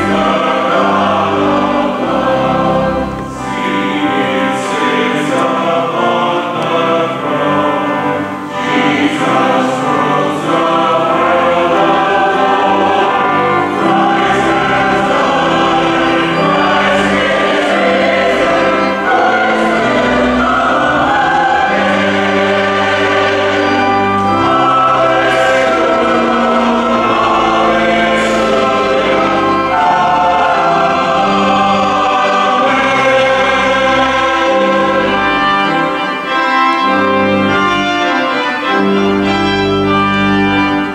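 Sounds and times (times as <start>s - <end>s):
choir singing: 0.0s - 40.9s.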